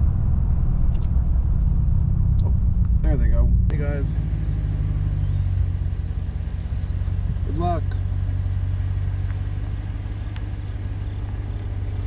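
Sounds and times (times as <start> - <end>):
truck engine rumble: 0.0 - 12.0
tyres on road: 0.0 - 12.0.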